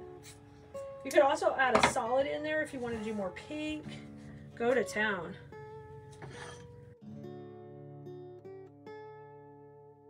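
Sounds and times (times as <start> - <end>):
acoustic guitar plucking: 0.0 - 10.0.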